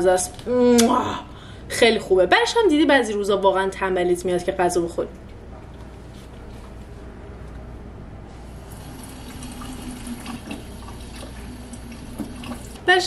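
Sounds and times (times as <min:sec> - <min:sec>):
tap water running into sink: 0:08.7 - 0:12.8.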